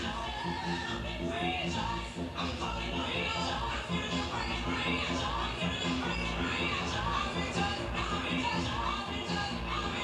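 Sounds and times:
music with steady bass beat: 0:00.0 - 0:10.0.

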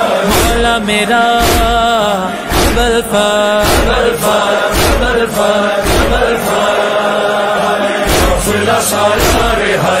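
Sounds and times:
chanted devotional singing: 0:00.0 - 0:10.0
deep drum thumps: 0:01.4 - 0:04.1, 0:04.7 - 0:06.4, 0:08.1 - 0:08.5, 0:09.2 - 0:09.6.

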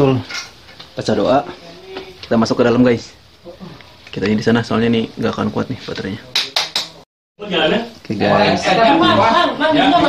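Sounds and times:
man talking: 0:01.0 - 0:06.5.

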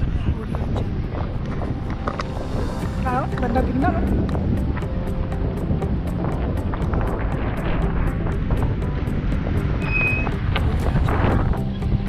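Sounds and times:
faint music: 0:00.0 - 0:12.0
wind buffeting microphone: 0:00.0 - 0:12.0.

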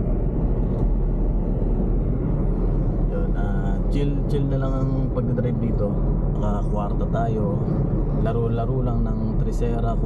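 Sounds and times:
car engine and road rumble: 0:00.0 - 0:10.0
man's voice: 0:03.1 - 0:10.0.

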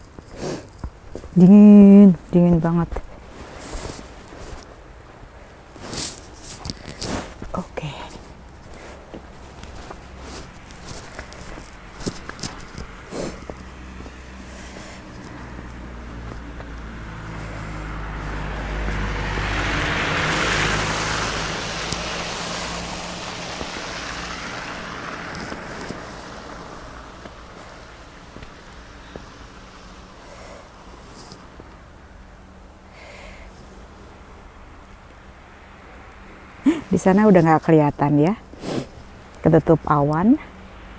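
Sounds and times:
tyre hiss on wet road: 0:05.7 - 0:07.5, 0:13.0 - 0:16.2, 0:17.1 - 0:31.9, 0:32.8 - 0:36.8, 0:38.5 - 0:39.4
van engine driving past: 0:09.3 - 0:32.9.

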